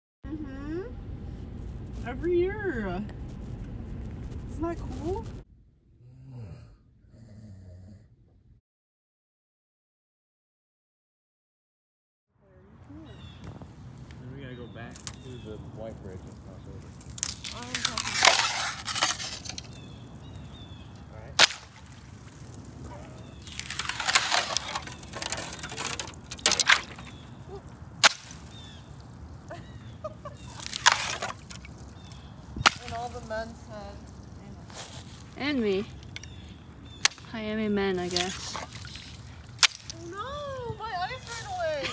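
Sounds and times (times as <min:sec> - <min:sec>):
crunching: 0:13.2 - 0:41.9
sharp cracks: 0:14.8 - 0:40.6.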